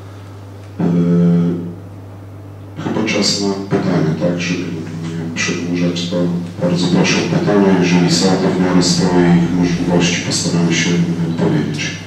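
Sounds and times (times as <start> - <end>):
low electrical hum: 0.0 - 12.0
man's drawn-out hesitation sound: 2.8 - 12.0.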